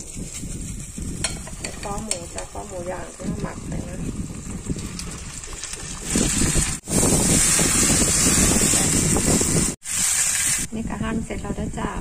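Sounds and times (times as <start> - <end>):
meat sizzling in a pan: 0.0 - 10.7.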